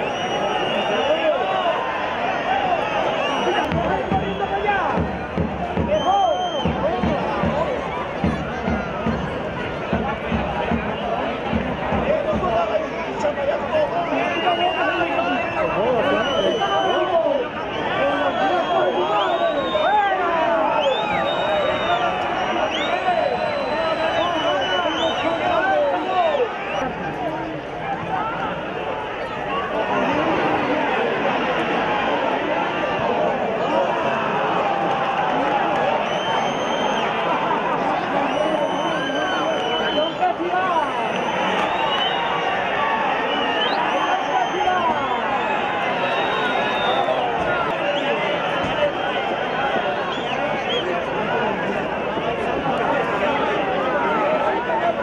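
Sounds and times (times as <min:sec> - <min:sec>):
crowd shouting: 0:00.0 - 0:55.0.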